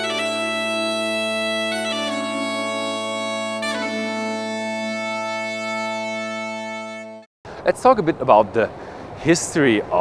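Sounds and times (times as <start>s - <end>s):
bagpipe music: 0.0s - 7.3s.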